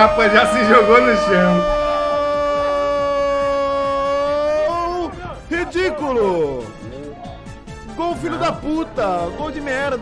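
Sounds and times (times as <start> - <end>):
person wailing a long note: 0.0 - 4.9.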